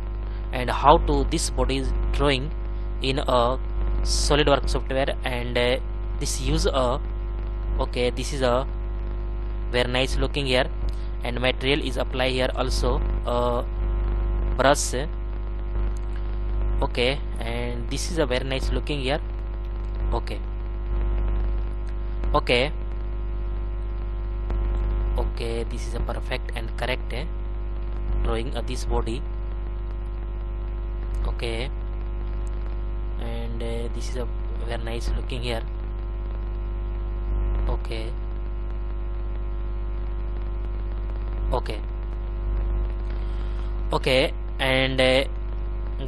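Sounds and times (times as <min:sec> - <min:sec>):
electrical mains hum: 0:00.0 - 0:46.0
person speaking: 0:00.3 - 0:07.0, 0:07.8 - 0:08.7, 0:09.7 - 0:13.7, 0:14.5 - 0:15.2, 0:16.0 - 0:20.5, 0:21.9 - 0:22.8, 0:25.1 - 0:27.3, 0:28.0 - 0:29.3, 0:31.1 - 0:31.8, 0:33.2 - 0:35.7, 0:37.6 - 0:38.2, 0:41.5 - 0:41.9, 0:43.1 - 0:45.3.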